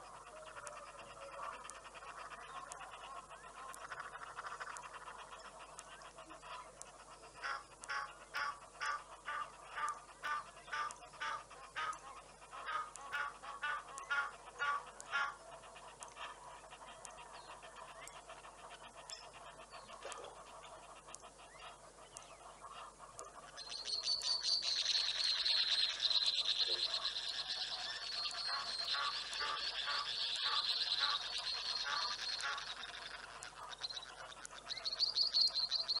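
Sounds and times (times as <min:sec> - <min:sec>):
high-pitched bird chatter: 0:00.0 - 0:36.0
repeated bird calls: 0:00.0 - 0:36.0.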